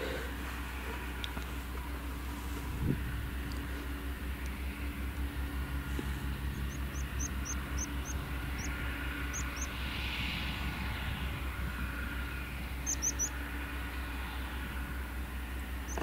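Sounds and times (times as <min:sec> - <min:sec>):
distant harvester engine drone: 0:00.0 - 0:16.0
high bird chirps: 0:06.5 - 0:09.8, 0:12.8 - 0:13.4.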